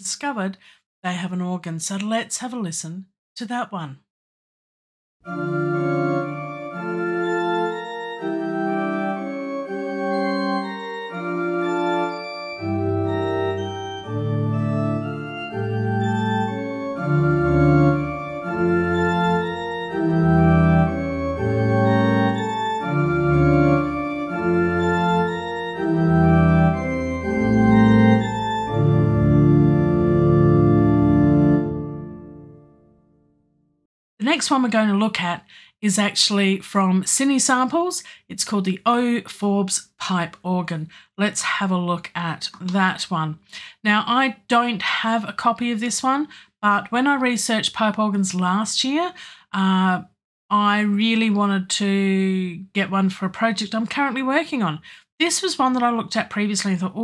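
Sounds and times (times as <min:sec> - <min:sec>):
deep bass organ pedal notes: 0:05.3 - 0:32.6
pipe organ sustained chords: 0:05.3 - 0:32.6.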